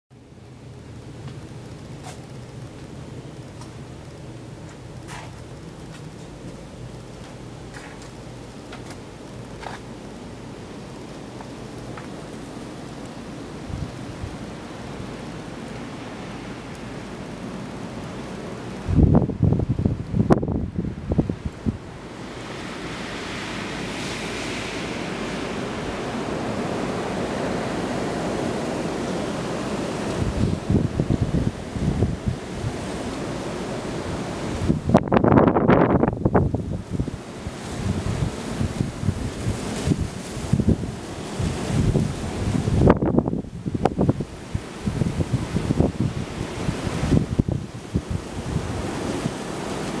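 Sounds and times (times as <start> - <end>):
wind blowing over microphone: 13.4 - 50.0.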